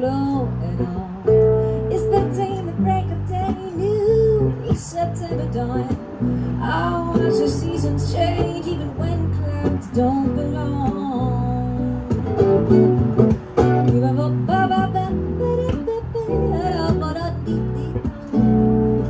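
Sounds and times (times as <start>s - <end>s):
acoustic guitar strumming: 0.0s - 19.0s
electric bass playing: 0.0s - 19.0s.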